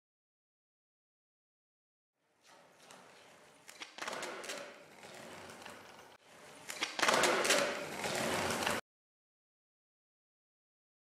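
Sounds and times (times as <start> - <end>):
skateboard wheels rolling on concrete: 2.3 - 8.8
skateboard clicks and clacks: 2.8 - 8.8.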